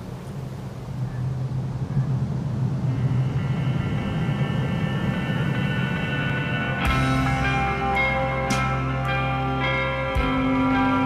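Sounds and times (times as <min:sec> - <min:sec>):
low steady rumble: 0:00.0 - 0:11.0
sustained high tones: 0:02.8 - 0:11.0.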